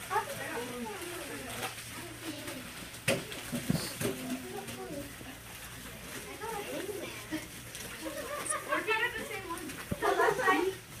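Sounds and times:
murmur of children's voices: 0:00.0 - 0:11.0.

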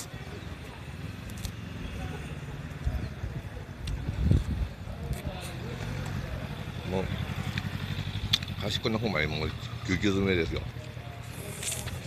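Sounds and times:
vehicle engine running low: 0:00.1 - 0:12.0.

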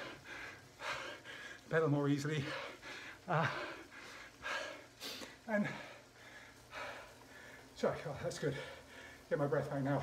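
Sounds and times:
man panting heavily: 0:00.0 - 0:09.3
man speaking: 0:01.7 - 0:02.6, 0:07.8 - 0:10.0.

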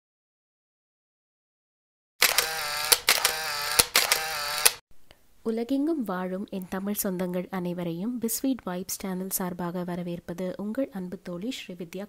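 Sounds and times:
sharp click: 0:02.2 - 0:04.8.

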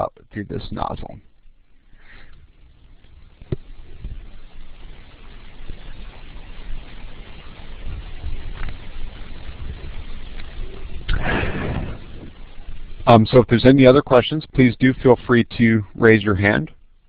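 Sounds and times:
rumbling background noise: 0:00.0 - 0:17.0
faint clicks: 0:10.0 - 0:11.2.

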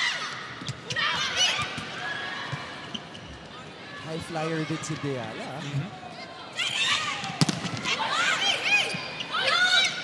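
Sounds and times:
crowd chatter: 0:00.0 - 0:10.0
shoes squeaking on court: 0:02.5 - 0:03.6.

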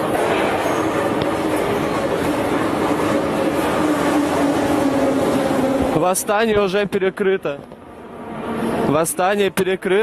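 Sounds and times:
metro train rumble: 0:00.0 - 0:10.0.

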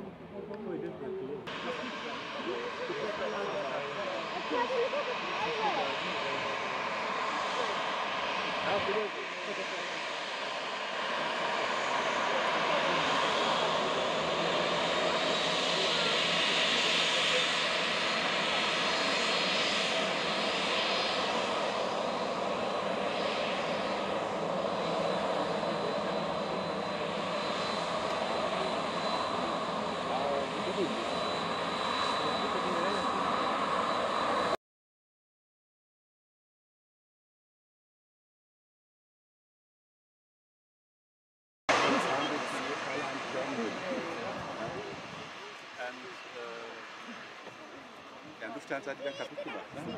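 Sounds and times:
high engine whine: 0:00.0 - 0:34.6, 0:41.7 - 0:49.9
jet engines taxiing: 0:00.0 - 0:34.6, 0:41.7 - 0:49.9.

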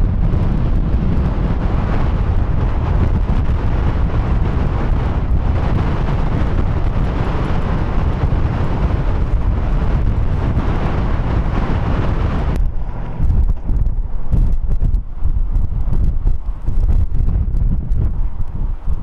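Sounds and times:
strong wind buffeting microphone: 0:00.0 - 0:19.0.

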